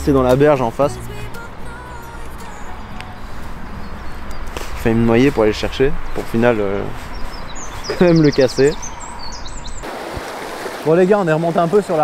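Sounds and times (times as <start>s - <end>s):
birds chirping: 0.0s - 9.9s
river running over stones: 9.8s - 12.0s.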